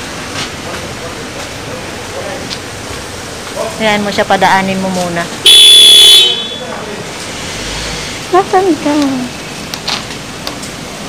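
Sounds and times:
loud vehicle horn: 0:05.4 - 0:06.7
vehicle moving past: 0:06.6 - 0:09.5.

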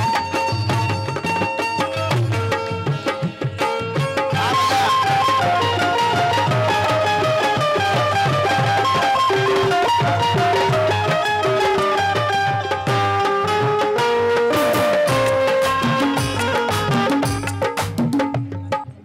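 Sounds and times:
hand drum rhythm: 0:00.0 - 0:19.0
held-note melody: 0:04.4 - 0:18.2.

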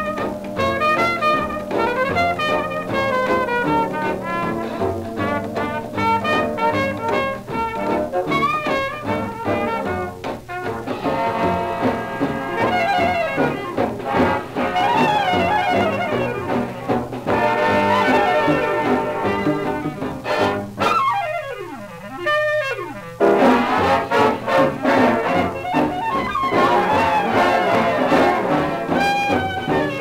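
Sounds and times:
swing orchestra playing: 0:00.0 - 0:30.0.

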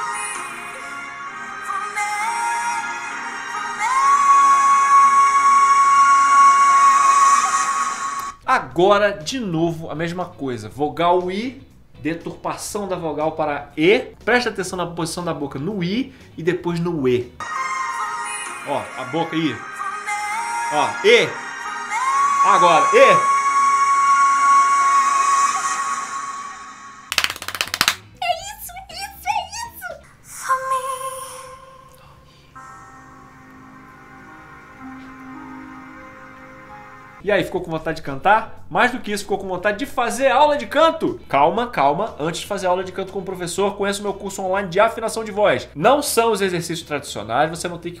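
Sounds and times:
woman singing a long high note: 0:00.0 - 0:08.3, 0:17.4 - 0:27.1.

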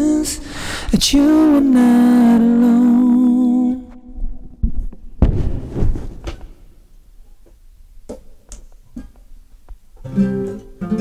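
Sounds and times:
microphone handling thumps: 0:04.2 - 0:06.8.

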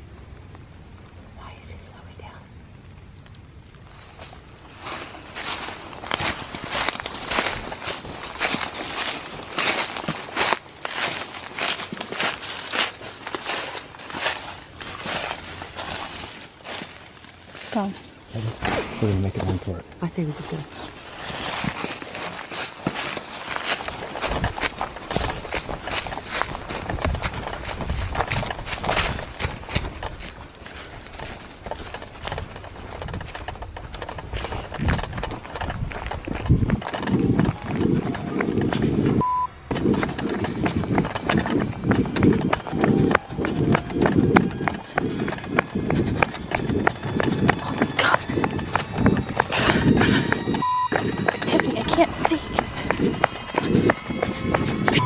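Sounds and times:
running footsteps: 0:03.9 - 0:55.0
breathless voices: 0:17.7 - 0:21.0
censor bleep: 0:39.2 - 0:39.7, 0:50.6 - 0:51.1
heavy panting: 0:49.4 - 0:50.5.

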